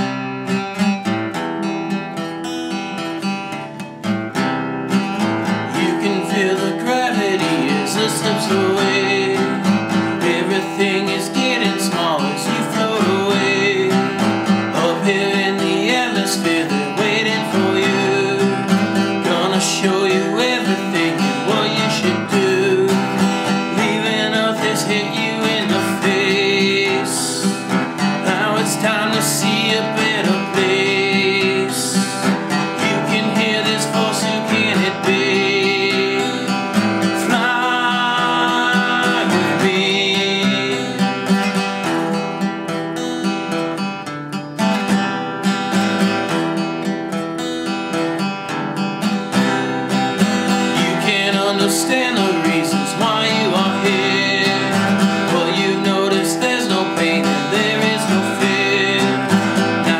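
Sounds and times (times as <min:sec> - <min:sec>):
acoustic guitar strumming: 0:00.0 - 0:59.9
man singing: 0:05.7 - 0:42.2, 0:50.2 - 0:59.9.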